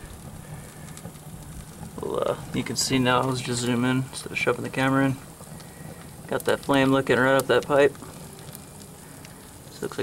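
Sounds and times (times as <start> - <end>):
fire crackling: 0.0 - 10.0
wood fire rushing: 0.0 - 10.0.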